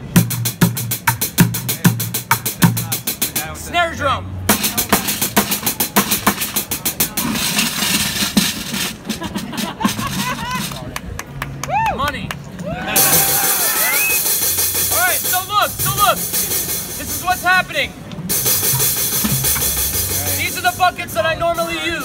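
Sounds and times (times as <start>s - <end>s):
people's voices: 1.6s - 22.0s
cymbals: 4.5s - 10.6s, 13.0s - 22.0s
drumming on plastic buckets: 4.5s - 11.4s, 18.2s - 20.5s.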